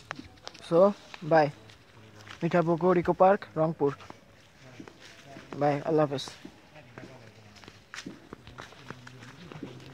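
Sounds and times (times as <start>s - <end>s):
footsteps on dirt path: 0.0s - 9.9s.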